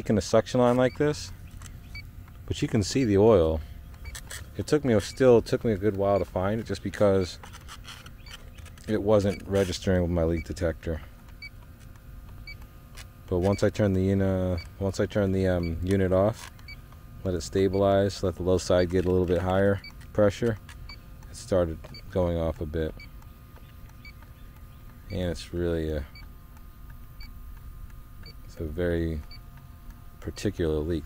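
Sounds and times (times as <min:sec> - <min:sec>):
leak detector high beeps: 0:00.6 - 0:07.4, 0:08.1 - 0:10.7, 0:13.4 - 0:13.7, 0:14.4 - 0:14.8, 0:15.5 - 0:15.9, 0:17.4 - 0:19.0, 0:20.8 - 0:21.1, 0:22.9 - 0:27.4, 0:28.2 - 0:28.6.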